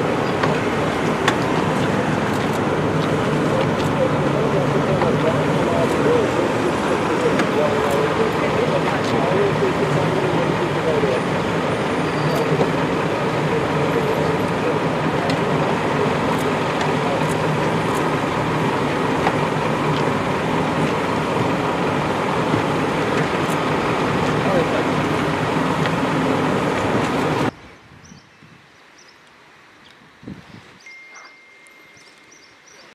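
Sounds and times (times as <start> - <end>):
indistinct voices: 0.0 - 27.5
vehicle engine idling: 0.0 - 27.5.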